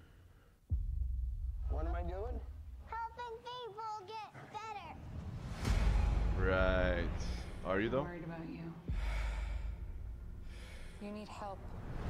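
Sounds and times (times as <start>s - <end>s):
low rumble: 0.7s - 3.2s, 5.1s - 12.0s.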